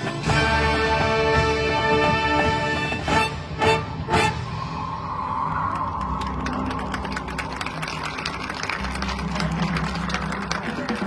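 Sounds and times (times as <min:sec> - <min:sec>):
marching band chord: 0:00.0 - 0:04.6.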